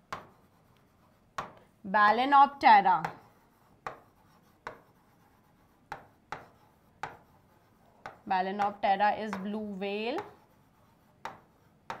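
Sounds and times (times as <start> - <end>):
pen tapping on board: 0.0 - 2.2, 3.0 - 5.0, 5.9 - 7.4, 8.0 - 10.4, 11.1 - 12.0.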